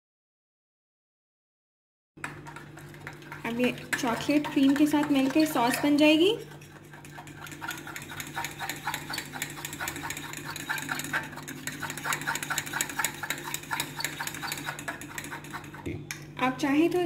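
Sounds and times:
spoon scraping glass bowl: 2.2s - 15.9s.

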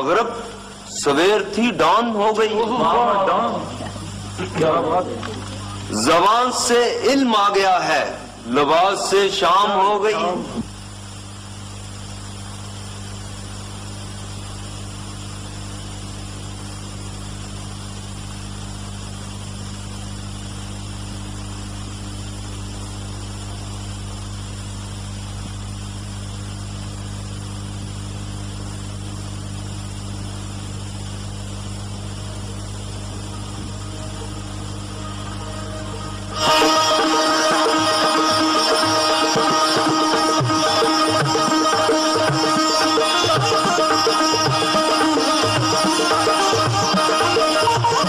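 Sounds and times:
constant hiss: 0.0s - 48.0s
electrical mains hum: 0.0s - 48.0s.

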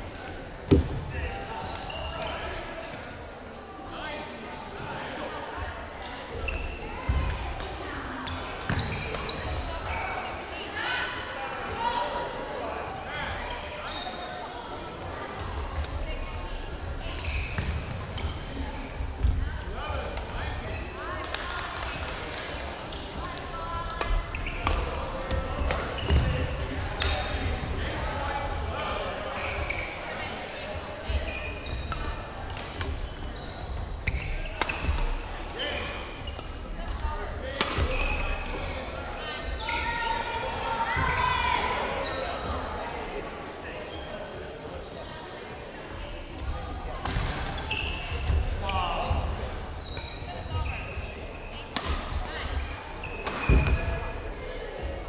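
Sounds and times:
sneakers squeaking on wooden floor: 1.6s - 2.5s, 8.2s - 10.4s, 17.1s - 19.4s, 23.9s - 27.3s, 28.8s - 30.3s, 31.1s - 36.6s, 37.7s - 40.2s, 46.4s - 54.2s.

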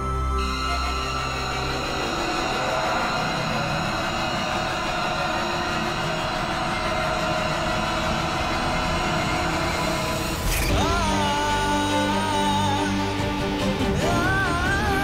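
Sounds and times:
dramatic background score: 0.0s - 15.0s
noisy rumble: 0.4s - 13.9s.

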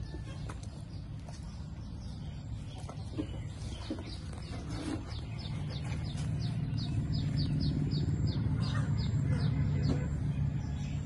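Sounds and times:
bird chirping: 0.0s - 11.0s
steady low rumble: 0.0s - 11.0s.

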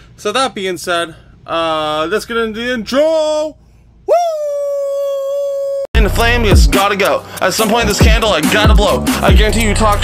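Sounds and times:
person howling woo cry: 4.1s - 5.9s.

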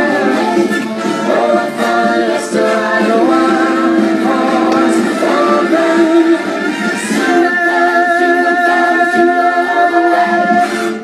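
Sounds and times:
group of voices singing: 0.0s - 11.0s
music: 0.0s - 11.0s.

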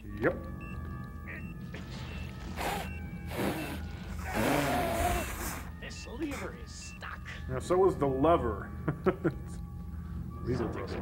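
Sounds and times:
background music with high tones: 0.0s - 11.0s.

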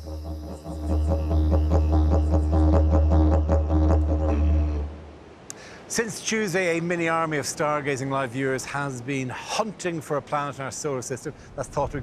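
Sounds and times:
didgeridoo drone: 0.0s - 5.0s.

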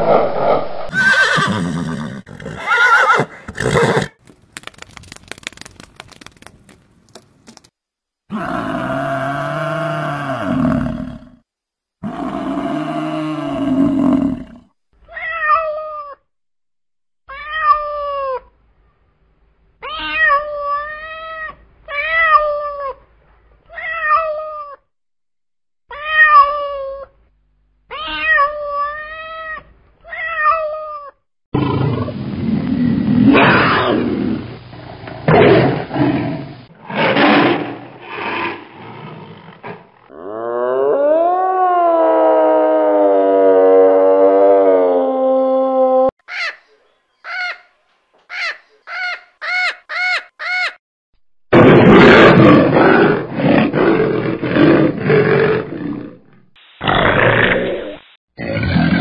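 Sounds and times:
harsh rough growling roar: 0.0s - 2.7s, 12.0s - 14.7s, 31.6s - 45.3s, 51.5s - 59.0s
cat meowing: 15.1s - 16.2s, 17.3s - 18.4s, 19.8s - 23.0s, 23.7s - 24.8s, 25.9s - 27.1s, 27.9s - 31.2s
long drawn-out animal calls: 40.2s - 47.7s.

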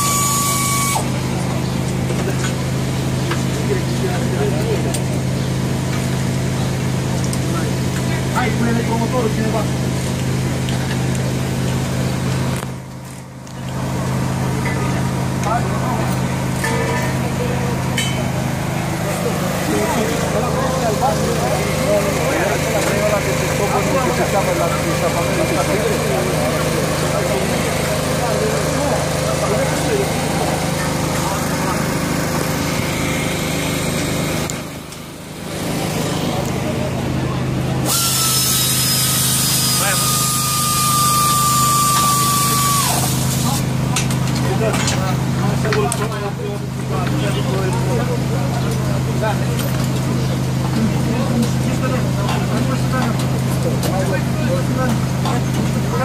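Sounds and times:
power tool whining: 0.0s - 2.7s, 37.7s - 44.0s
indistinct voices: 13.7s - 38.3s.

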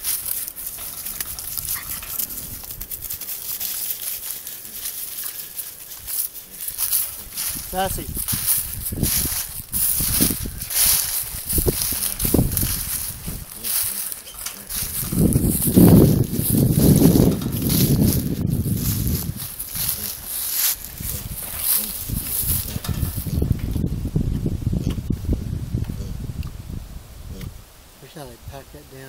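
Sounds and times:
footsteps crunching dry leaves: 0.0s - 23.6s
hogs grunting: 21.0s - 22.8s.

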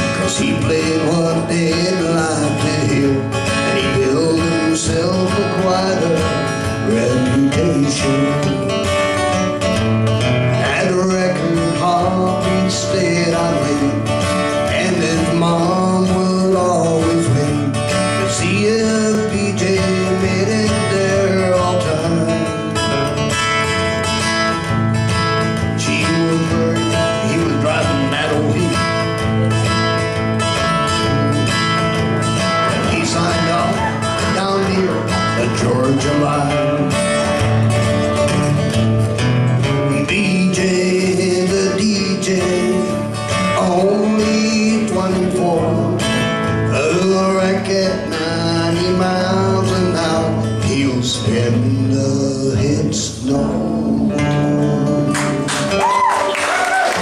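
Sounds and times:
person singing: 0.0s - 8.9s, 10.6s - 23.0s, 25.6s - 29.6s, 30.7s - 37.4s, 39.8s - 56.3s
acoustic guitars strumming: 0.0s - 57.0s.

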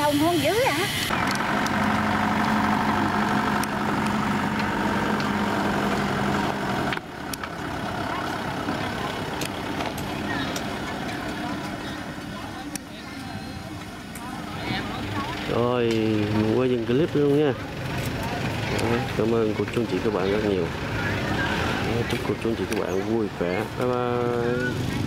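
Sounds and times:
truck engines idling: 0.0s - 25.0s
voices in background: 7.8s - 25.0s.

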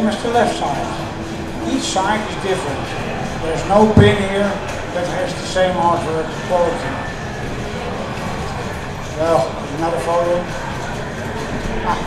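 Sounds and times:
exhibition hall din: 0.0s - 12.0s.

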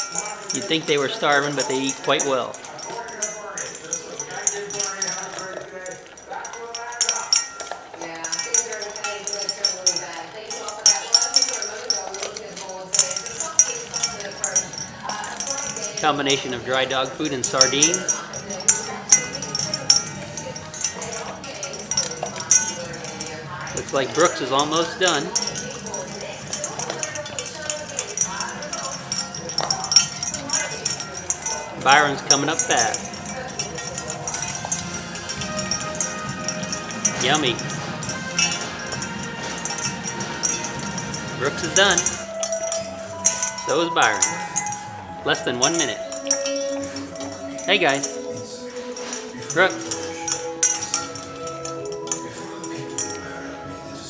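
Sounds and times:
dogs eating from metal bowls: 0.0s - 54.0s.

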